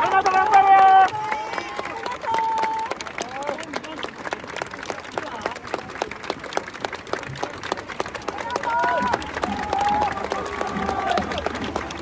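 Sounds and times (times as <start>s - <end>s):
crowd clapping: 0.0s - 12.0s.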